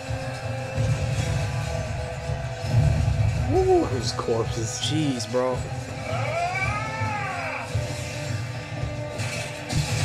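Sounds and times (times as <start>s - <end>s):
soundtrack music: 0.0s - 10.0s.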